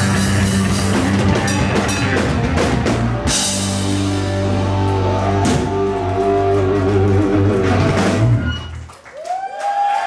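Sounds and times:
rock band holding a chord: 0.0 - 8.5.

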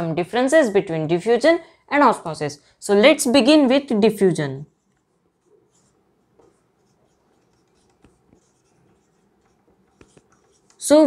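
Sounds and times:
marker scratching on whiteboard: 4.6 - 11.0.

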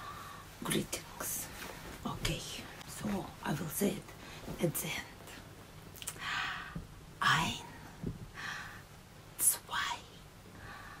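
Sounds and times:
woman whispering: 0.6 - 5.4, 7.2 - 7.9, 9.4 - 10.2.

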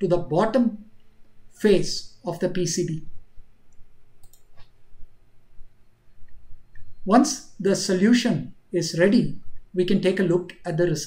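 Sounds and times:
faint background hiss: 0.0 - 11.0
computer mouse clicks: 3.7 - 4.8.

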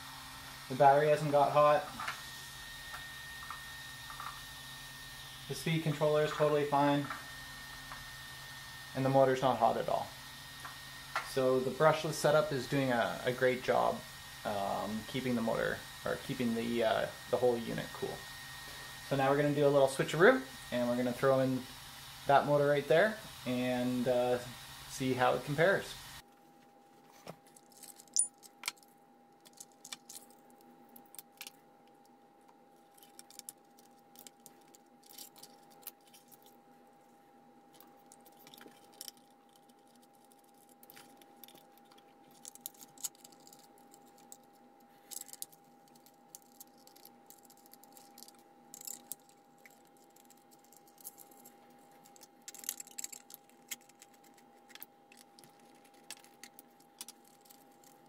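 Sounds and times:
thin steady hum: 0.0 - 58.0
small plastic parts and tools clinking: 27.4 - 32.1, 32.9 - 36.6, 37.7 - 58.0.

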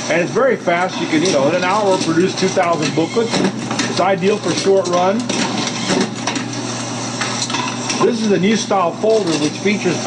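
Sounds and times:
machine hum: 0.0 - 10.0
booklet maker clattering: 0.7 - 10.0.

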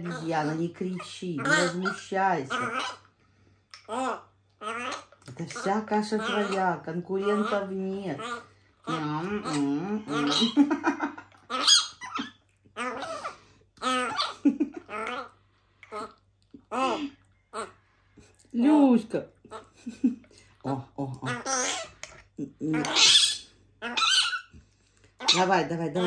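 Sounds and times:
baby baboon squeaking: 1.0 - 3.1, 3.9 - 10.7, 11.5 - 15.3, 21.3 - 22.1, 22.7 - 24.5, 25.2 - 25.6.

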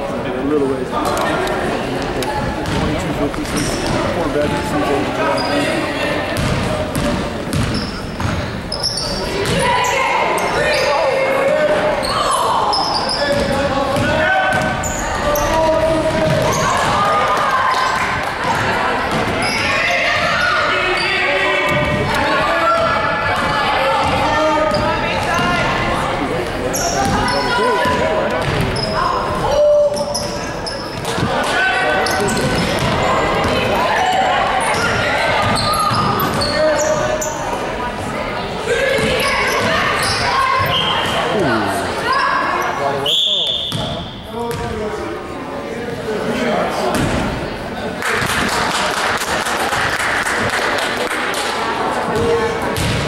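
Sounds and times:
spectators talking and calling out: 0.0 - 53.0
sneaker squeaks: 2.6 - 4.2, 5.2 - 11.1, 11.9 - 17.0, 17.7 - 22.0, 22.7 - 25.7, 26.7 - 37.6, 38.9 - 41.4, 42.0 - 44.7
basketball bouncing on hardwood: 6.4 - 8.4.

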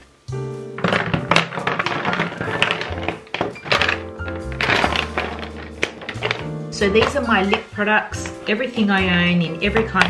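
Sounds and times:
background music: 0.0 - 10.0
plastic tubes clattering onto wood: 0.8 - 10.0.

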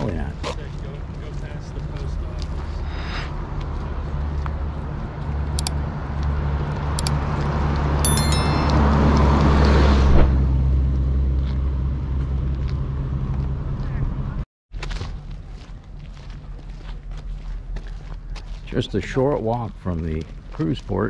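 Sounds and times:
bus driving past: 8.7 - 14.4.

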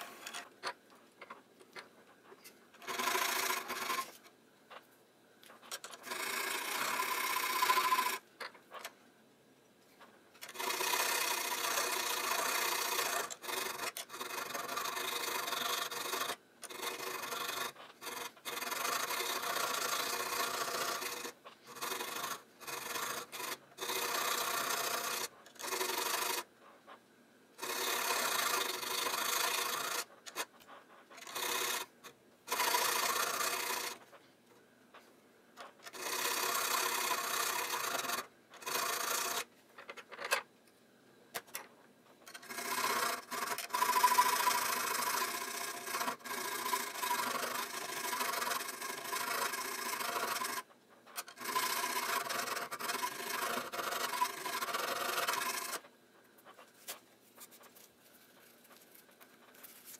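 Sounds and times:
metal file scraping steel barrel: 42.3 - 55.9.

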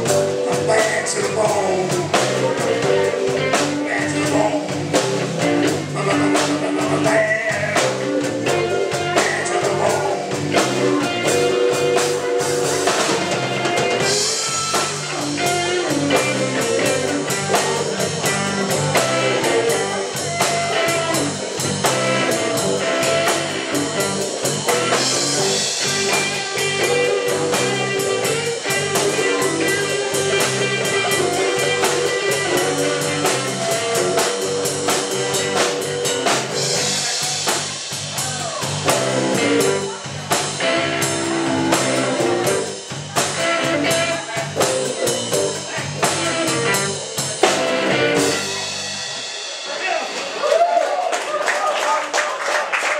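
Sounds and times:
electric guitar: 0.0 - 51.0
bass: 0.0 - 51.9
drum kit beat: 0.0 - 51.9.

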